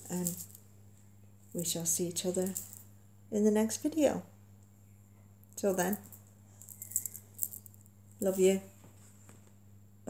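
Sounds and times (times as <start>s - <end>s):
light clicks and jingling rattles: 5.6s - 8.4s.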